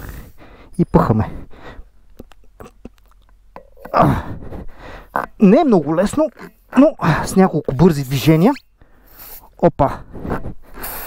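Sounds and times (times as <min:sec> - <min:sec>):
person grunting: 0:03.8 - 0:04.4.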